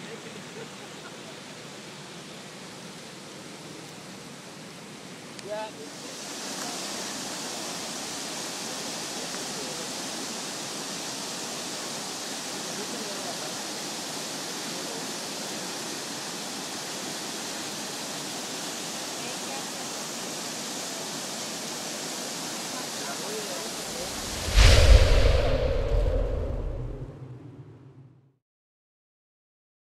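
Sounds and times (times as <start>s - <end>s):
floodwater rushing: 5.9s - 10.0s, 19.6s - 27.0s.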